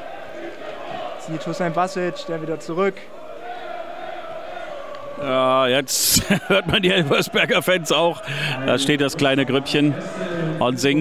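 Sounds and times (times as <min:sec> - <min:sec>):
football supporters chanting: 0:00.0 - 0:11.0.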